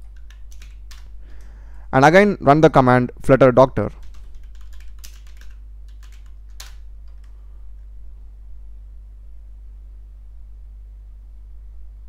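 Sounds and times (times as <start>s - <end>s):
typing on computer keyboard: 0.0s - 1.1s, 3.9s - 7.4s
steady low hum: 0.0s - 12.0s.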